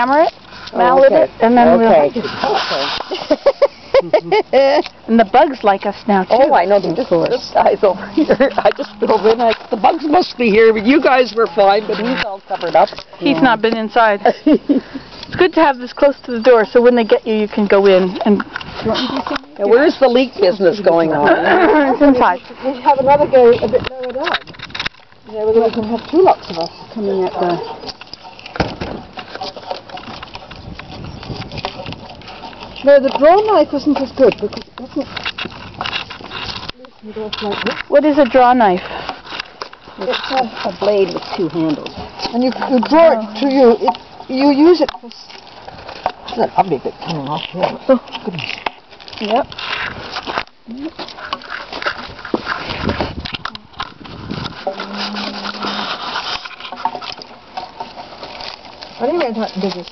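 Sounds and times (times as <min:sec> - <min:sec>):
bark crackling and snapping: 0:23.9 - 0:38.5, 0:39.1 - 0:59.9.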